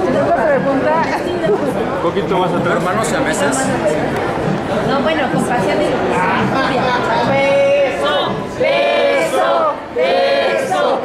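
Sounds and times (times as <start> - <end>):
overlapping chatter of voices: 0.0 - 11.0.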